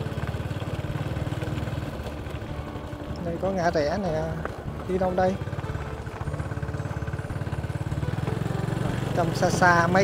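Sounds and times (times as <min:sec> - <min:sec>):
small motorbike engine running: 0:00.0 - 0:10.0.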